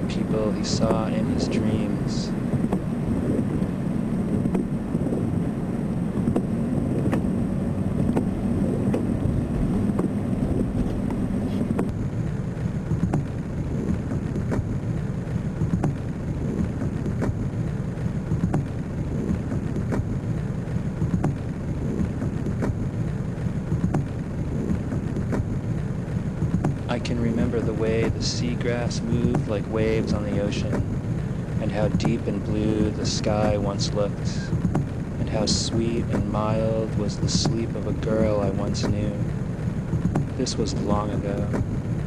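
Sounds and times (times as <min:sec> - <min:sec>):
low rumbling noise: 0:00.0 - 0:42.0
thin high whine: 0:00.0 - 0:42.0.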